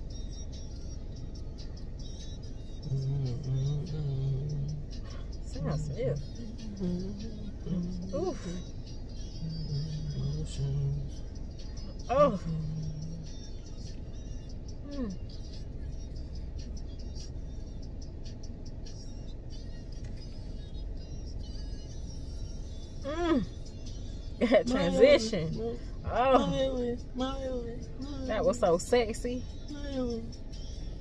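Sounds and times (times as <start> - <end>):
car engine rumble: 0.0 - 31.0
person humming: 2.8 - 8.7, 9.4 - 11.1, 12.0 - 13.3, 14.8 - 15.2, 23.0 - 23.6, 24.4 - 28.4.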